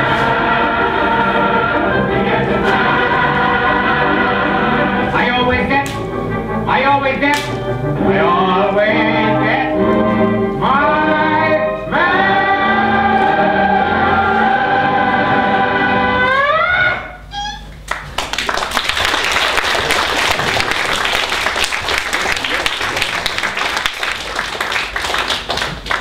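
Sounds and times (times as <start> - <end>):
audience applauding: 17.9 - 26.0.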